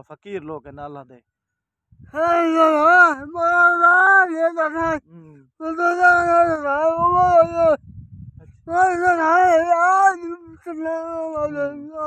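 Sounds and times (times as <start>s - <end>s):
man singing high wail: 2.1s - 7.8s, 8.7s - 12.0s.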